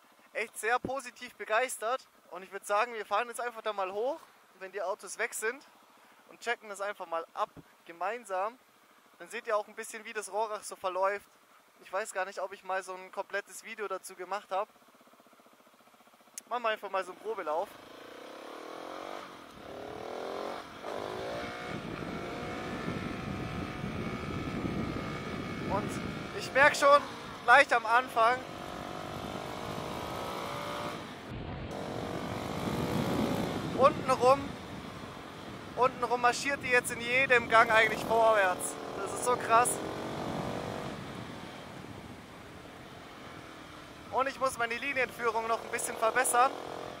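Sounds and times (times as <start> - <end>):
motorcycle engine accelerating: 17.7 - 47.0
wind rush on microphone: 21.0 - 27.4, 28.4 - 38.6, 39.4 - 43.5.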